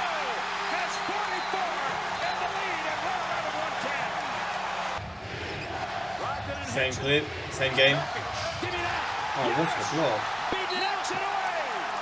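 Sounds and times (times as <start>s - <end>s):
arena crowd cheering: 0.0s - 12.0s.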